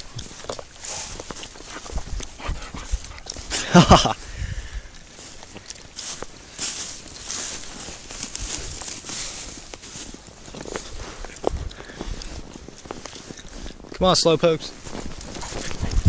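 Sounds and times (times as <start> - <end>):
footsteps crunching through snow: 0.0 - 16.0.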